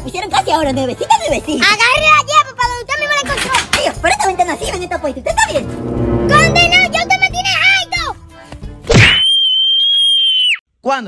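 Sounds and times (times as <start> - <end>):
swoosh: 5.4 - 8.3.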